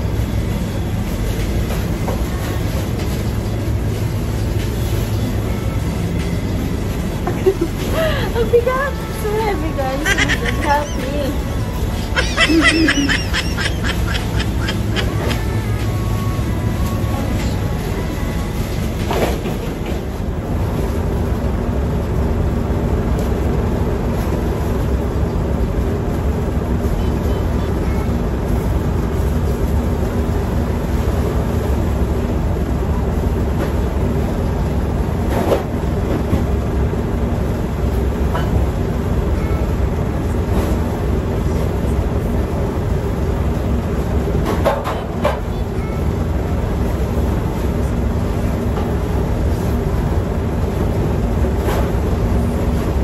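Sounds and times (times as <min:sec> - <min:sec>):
machine rumble and hum: 0:00.0 - 0:53.0.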